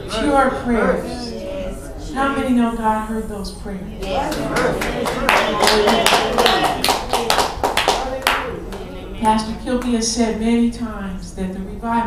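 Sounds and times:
voices: 0.0 - 12.0
people clapping: 4.0 - 10.0.

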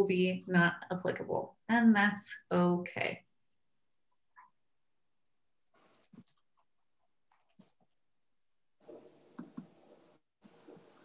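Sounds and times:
room noise hiss: 8.8 - 11.0
mouse and keyboard clicks: 9.3 - 9.7.

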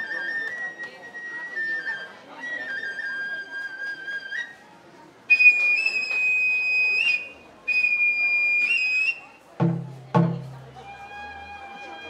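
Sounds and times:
bamboo flute high notes: 0.0 - 4.7, 5.3 - 9.5, 10.7 - 12.0
drum struck: 9.6 - 10.6.

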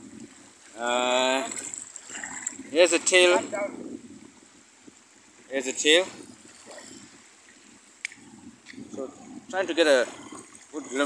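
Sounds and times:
water trickling and lapping: 0.0 - 11.0.

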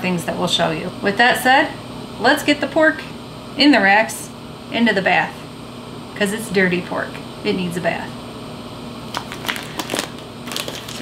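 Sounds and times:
plastic bag crinkling: 9.1 - 11.0.

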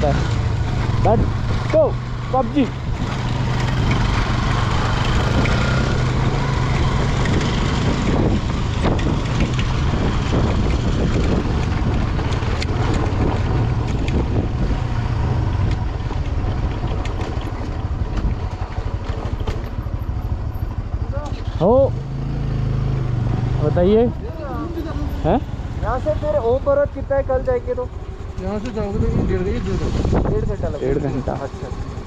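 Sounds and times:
motorcycle engine running: 0.0 - 32.0.

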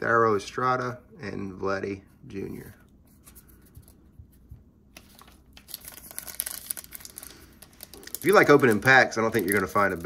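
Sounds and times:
wrapper tearing and crinkling: 5.0 - 10.0.

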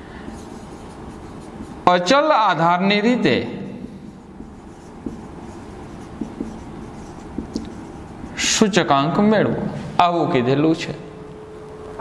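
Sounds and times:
marker pen on whiteboard: 0.0 - 9.3.

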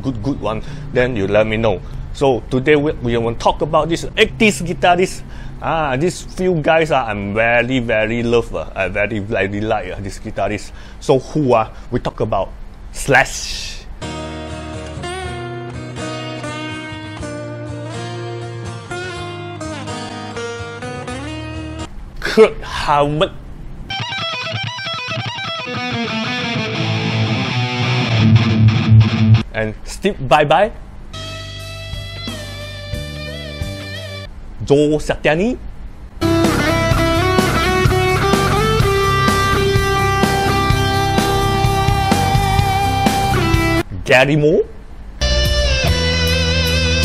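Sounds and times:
acoustic guitar lead line: 14.0 - 21.9, 23.9 - 29.4, 31.1 - 34.3, 36.2 - 43.9, 45.2 - 47.0
live rock band: 24.0 - 29.4, 36.2 - 43.8, 45.2 - 47.0
low held bass note: 45.2 - 47.0.

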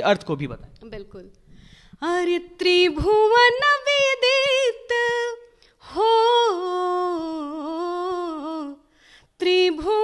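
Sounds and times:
woman singing unaccompanied: 2.0 - 8.8, 9.4 - 10.0.

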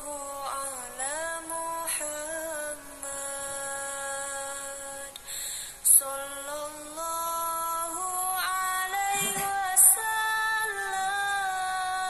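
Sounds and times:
person singing: 0.0 - 12.0.

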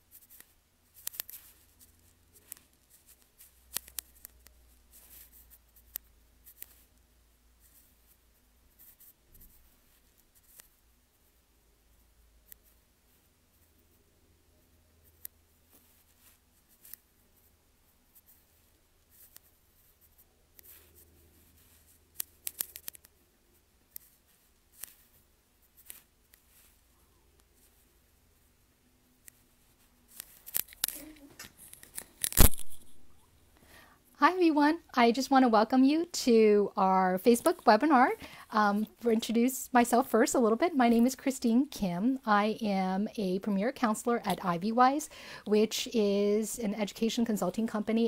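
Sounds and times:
faint background hum: 0.0 - 48.0.

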